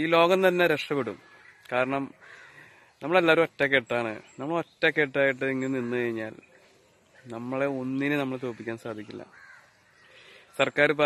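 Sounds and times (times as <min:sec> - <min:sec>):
man speaking: 0:03.0 - 0:06.4, 0:07.2 - 0:09.3, 0:10.6 - 0:11.0.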